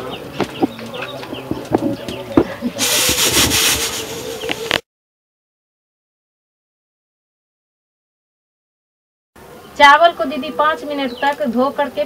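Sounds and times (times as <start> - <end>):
knife scraping vegetable: 2.8 - 4.8.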